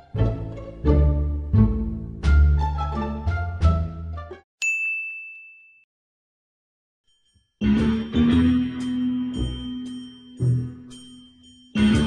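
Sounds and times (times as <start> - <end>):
bright ding: 4.6 - 5.9
plucked string music: 7.6 - 10.9, 11.8 - 12.0.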